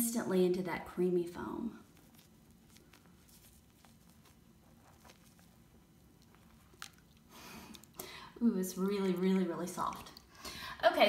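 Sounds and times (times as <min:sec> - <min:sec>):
bath foam squeezed and popping: 0:01.9 - 0:08.0.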